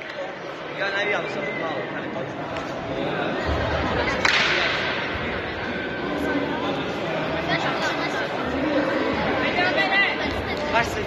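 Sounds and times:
background murmur: 0:00.0 - 0:11.0.

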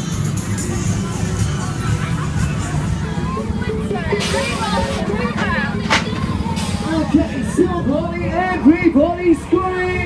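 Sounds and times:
funfair music: 0:00.0 - 0:10.0
crowd voices: 0:00.2 - 0:10.0
loud voices rising and falling: 0:02.1 - 0:08.4.

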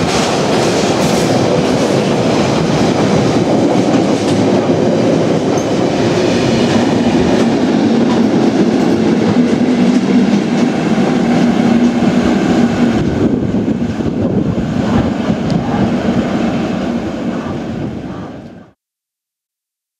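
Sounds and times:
train passing at speed: 0:00.0 - 0:18.8.

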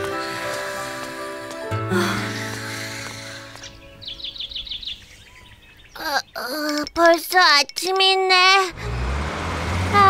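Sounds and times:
cartoon background music: 0:00.0 - 0:04.5
bird chirping: 0:03.0 - 0:08.6
cartoon character voice: 0:06.0 - 0:08.8.

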